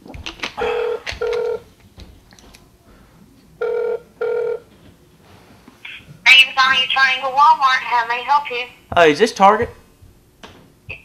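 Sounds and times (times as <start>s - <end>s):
telephone ringback tone: 0.6s - 1.7s, 3.6s - 4.7s.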